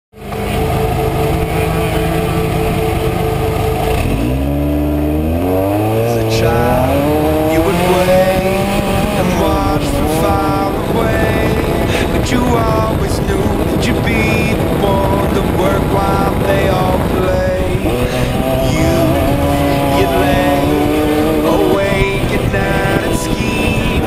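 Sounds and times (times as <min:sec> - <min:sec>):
race truck engine revving: 0:00.1 - 0:24.0.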